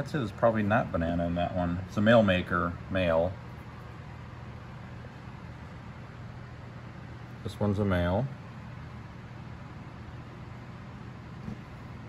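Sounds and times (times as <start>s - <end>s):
low machinery hum: 0.0s - 12.0s
faint soft knock: 11.4s - 11.8s.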